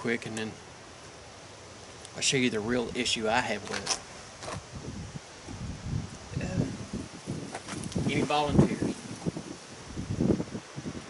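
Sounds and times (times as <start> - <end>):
leaves rustling: 0.0 - 11.0
wind buffeting microphone: 2.3 - 11.0.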